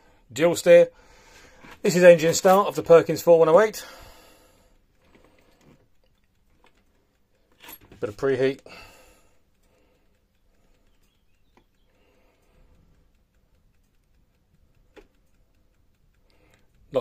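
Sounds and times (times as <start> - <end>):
small clicks: 0.0 - 17.0.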